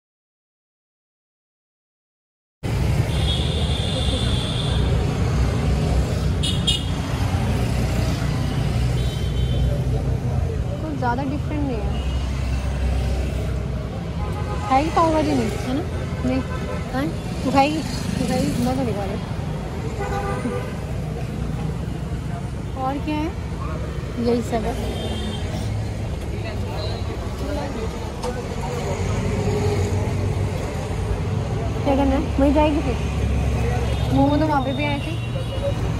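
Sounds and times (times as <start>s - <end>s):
roadside traffic rumble: 2.6s - 35.9s.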